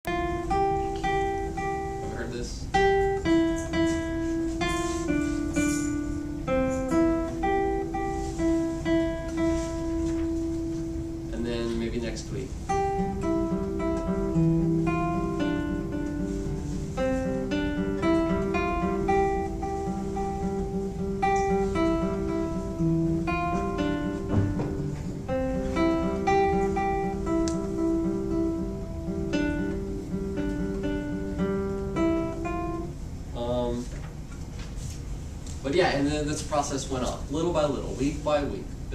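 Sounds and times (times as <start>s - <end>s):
classical guitar fingerstyle: 0.1s - 33.2s.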